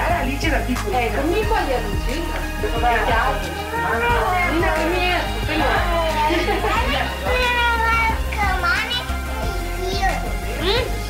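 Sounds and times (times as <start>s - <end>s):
adults talking: 0.0s - 11.0s
small child talking: 7.2s - 10.9s.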